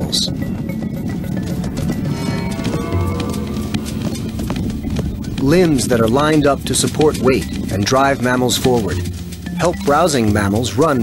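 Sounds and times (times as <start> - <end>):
galloping hoofbeats: 0.0 - 11.0
orchestral background music: 0.2 - 10.2.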